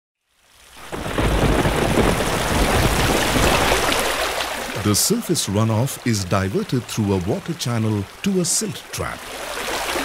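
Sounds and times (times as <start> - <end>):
heavy rain falling: 0.5 - 10.0.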